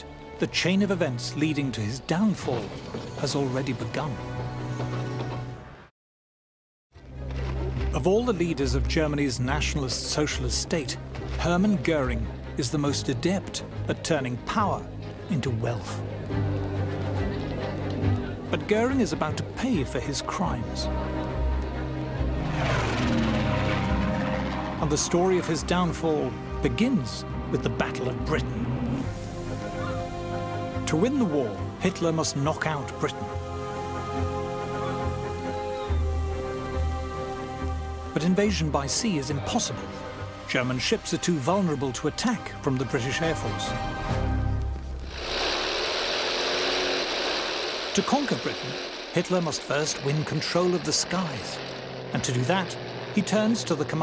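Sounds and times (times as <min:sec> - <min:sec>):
propeller aircraft flying past: 0:20.9 - 0:26.5, 0:45.1 - 0:54.0.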